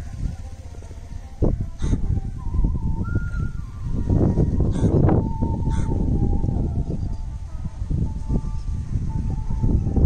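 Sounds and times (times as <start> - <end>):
wind rumbling on microphone: 0.0 - 10.0
thin wavering tone: 2.2 - 10.0.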